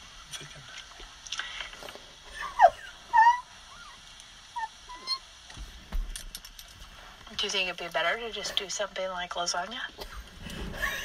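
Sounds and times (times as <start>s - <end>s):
high-pitched squeaky laughter: 2.3s - 4.0s.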